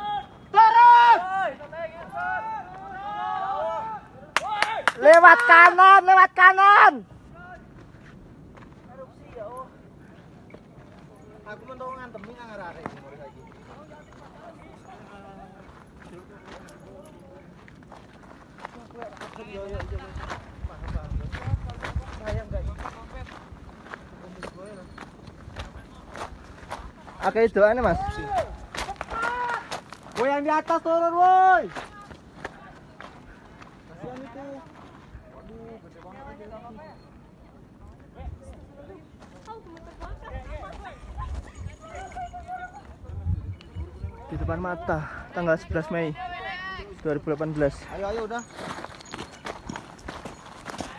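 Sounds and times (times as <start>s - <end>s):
footsteps crunching on gravel: 12.2s - 35.2s, 46.9s - 50.9s
people calling out: 28.0s - 30.3s.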